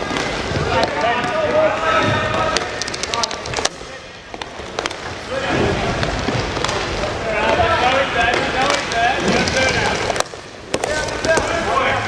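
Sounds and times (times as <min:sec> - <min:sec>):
sticks and puck clacking: 0:00.0 - 0:12.0.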